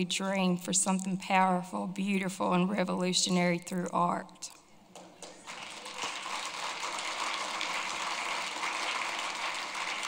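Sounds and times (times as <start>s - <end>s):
audience applauding: 5.2s - 10.0s.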